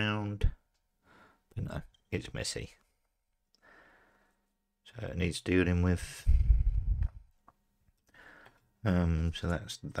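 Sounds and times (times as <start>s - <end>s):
person speaking: 1.5s - 2.9s.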